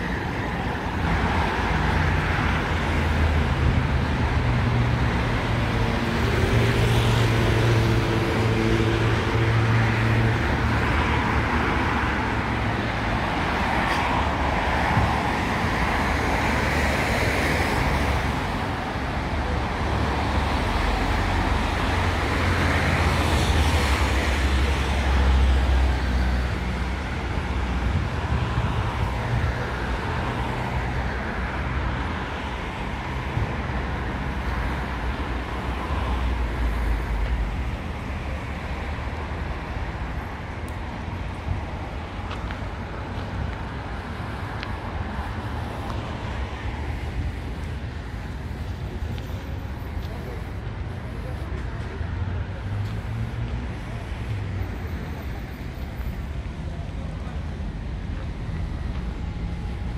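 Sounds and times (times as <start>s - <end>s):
cars passing: 0.0s - 59.9s.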